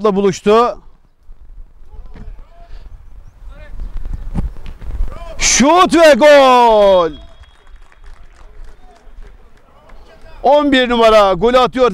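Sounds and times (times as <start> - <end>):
players shouting: 5.1 - 11.1.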